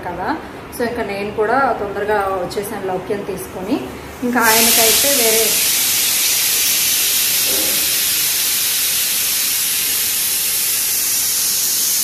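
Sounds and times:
pressure cooker steam hissing: 0:04.2 - 0:12.0.

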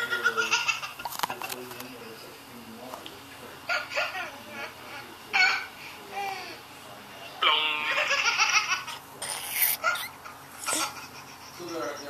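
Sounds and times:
baby laughing: 0:07.8 - 0:12.0.

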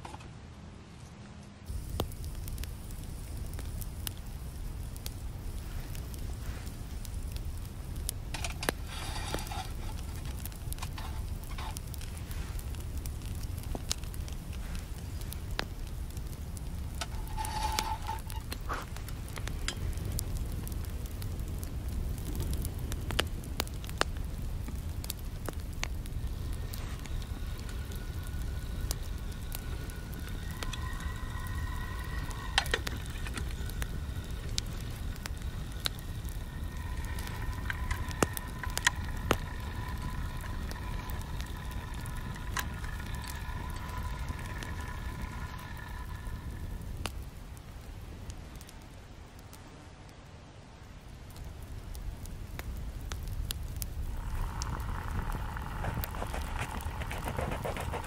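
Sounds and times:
wood fire crackling and popping: 0:01.6 - 0:58.0
low rumble: 0:01.7 - 0:48.3, 0:52.5 - 0:58.0.

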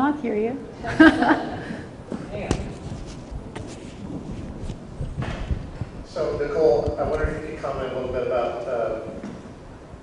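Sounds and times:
microphone handling knocks and thumps: 0:02.1 - 0:07.5.

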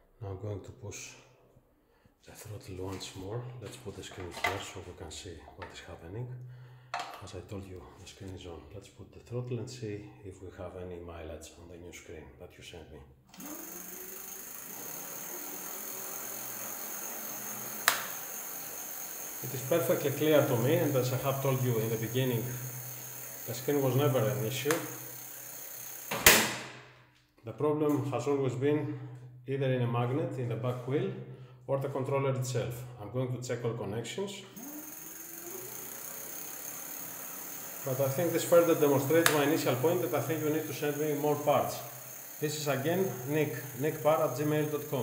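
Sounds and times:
electric bike motor whine: 0:13.4 - 0:26.3, 0:34.6 - 0:45.0.

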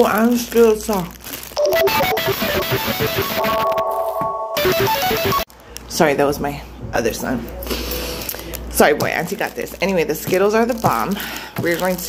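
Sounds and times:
phone ringtone guitar music: 0:01.6 - 0:05.5.

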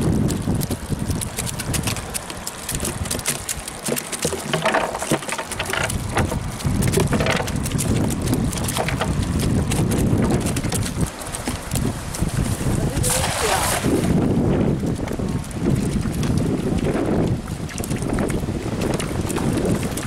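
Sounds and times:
wind buffeting microphone: 0:00.0 - 0:03.8, 0:04.8 - 0:20.0
sharp ticks and rustles: 0:00.0 - 0:13.1, 0:14.5 - 0:20.0.

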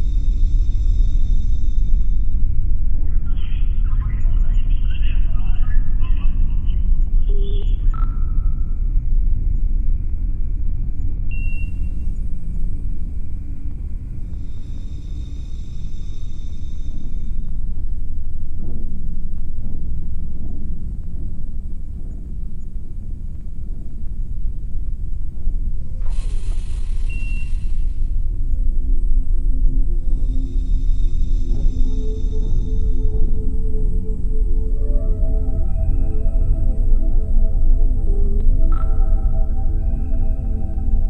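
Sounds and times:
deep continuous rumble: 0:00.0 - 0:41.0
radio hiss with faint tones: 0:03.1 - 0:07.9
radio voice chatter: 0:03.2 - 0:07.9
short electronic beeps: 0:11.3 - 0:11.9, 0:27.0 - 0:27.7.

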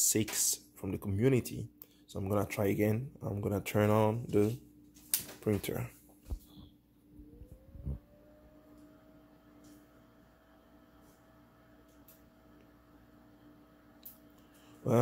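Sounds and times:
steady low hum: 0:00.0 - 0:15.0
fan spinning up: 0:05.2 - 0:15.0.

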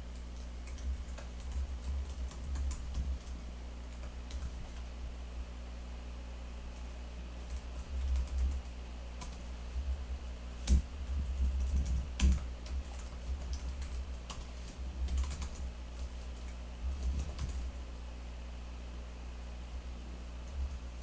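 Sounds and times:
steady low hum: 0:00.0 - 0:21.0
typing on computer keyboard: 0:00.2 - 0:04.9, 0:07.4 - 0:09.4, 0:10.6 - 0:17.7.

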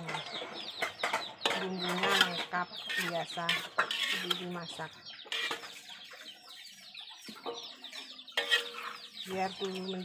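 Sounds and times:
chickens clucking and peeping: 0:00.0 - 0:10.0.

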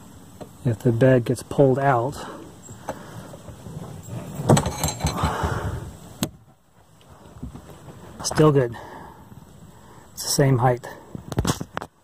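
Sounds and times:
metallic rattling and scraping: 0:03.4 - 0:05.6
metal frame clunk: 0:04.4 - 0:05.4.

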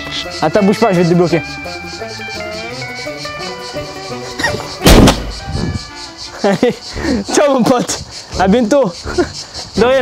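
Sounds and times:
exercise ball bursting bang: 0:04.8 - 0:05.5.

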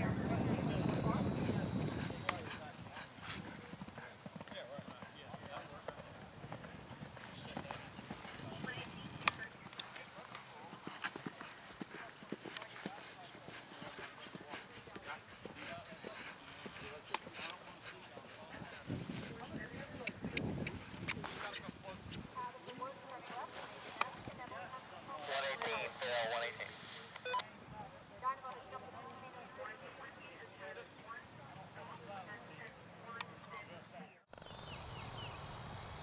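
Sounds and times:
horse hoofbeats galloping on turf: 0:00.0 - 0:26.4.

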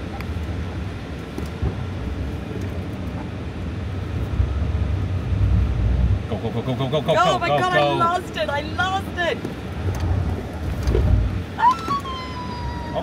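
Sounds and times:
road and tyre noise in car: 0:00.0 - 0:13.0.

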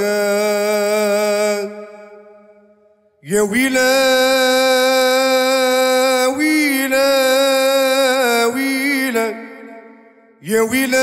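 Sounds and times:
man singing into a microphone: 0:00.0 - 0:02.6, 0:03.2 - 0:11.0.

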